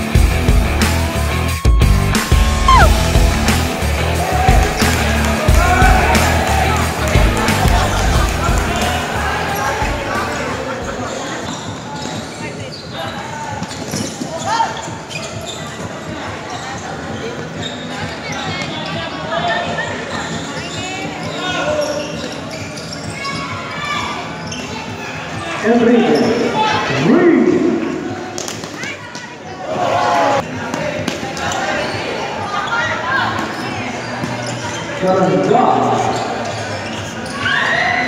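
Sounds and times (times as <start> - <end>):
people calling out and chattering: 0.0 - 38.0.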